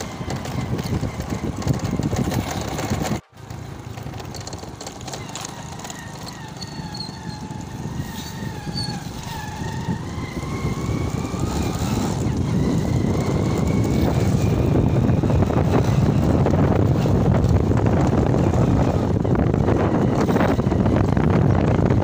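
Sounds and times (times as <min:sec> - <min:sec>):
wind rushing on microphone: 0:00.0 - 0:03.2, 0:05.3 - 0:22.0
motorcycle engine running: 0:00.0 - 0:22.0.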